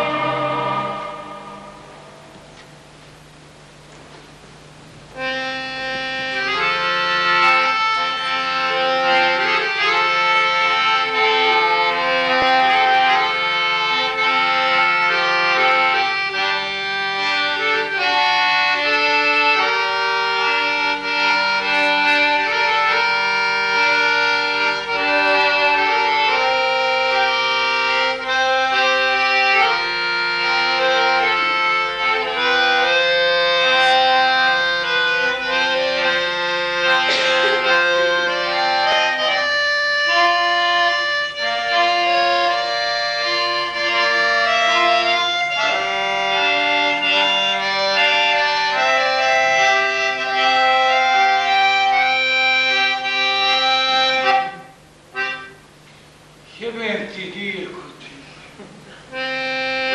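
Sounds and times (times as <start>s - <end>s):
accordion playing melody: 0.0s - 3.9s, 4.5s - 57.8s, 58.8s - 59.9s.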